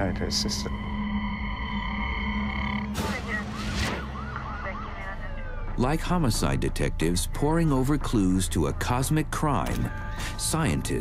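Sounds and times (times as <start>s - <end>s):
police siren yelping: 0.5s - 5.8s.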